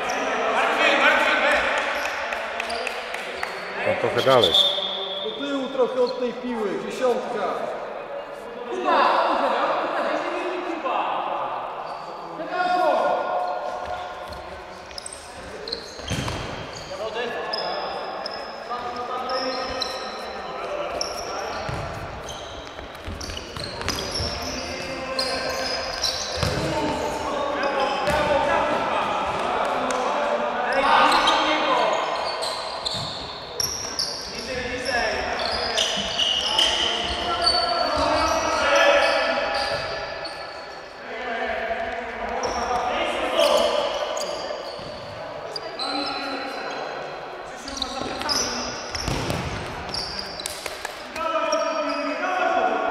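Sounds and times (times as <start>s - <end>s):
ball kicked and bouncing: 48.9s - 49.7s.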